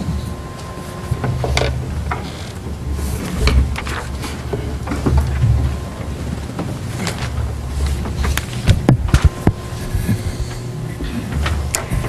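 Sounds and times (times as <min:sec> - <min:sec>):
knocks clicks and rustles: 0:00.0 - 0:12.0
steady low rumble: 0:00.0 - 0:12.0.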